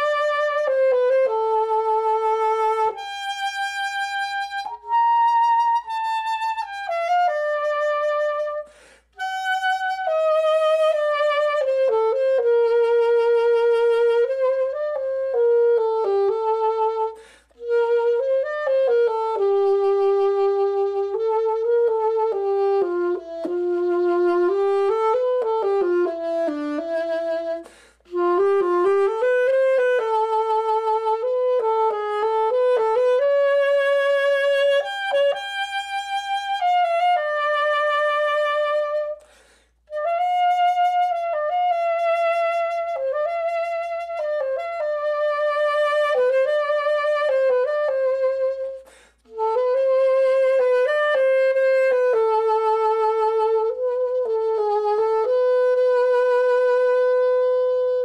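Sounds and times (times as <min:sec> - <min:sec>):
solo saxophone melody: 0:00.0 - 0:58.0.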